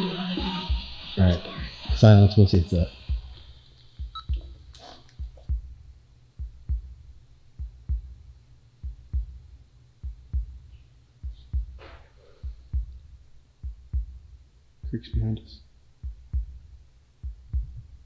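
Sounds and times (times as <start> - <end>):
heartbeat thumping: 0.4 - 1.0, 1.6 - 18.0.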